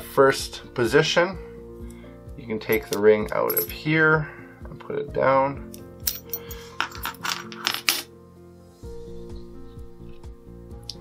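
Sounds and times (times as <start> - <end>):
metal rings clinking: 2.6 - 3.8, 6.0 - 8.1.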